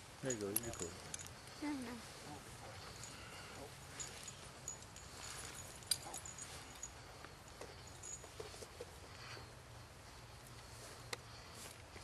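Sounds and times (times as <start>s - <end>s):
harness tack clinking: 0.2s - 9.5s.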